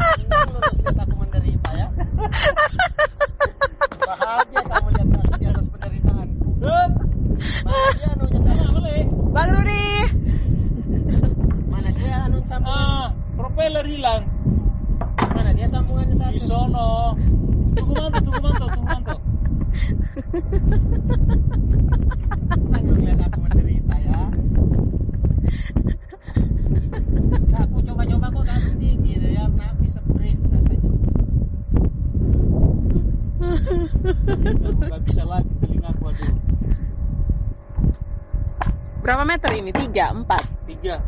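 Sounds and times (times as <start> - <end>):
faint steady hum: 0.0 - 41.0
wind rumbling on microphone: 0.0 - 41.0
thump: 15.0 - 15.5.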